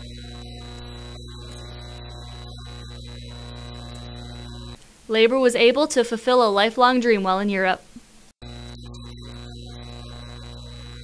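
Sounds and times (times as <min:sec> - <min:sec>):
thin high whine: 0:00.0 - 0:04.8, 0:08.4 - 0:11.0
electrical mains hum: 0:00.0 - 0:11.0.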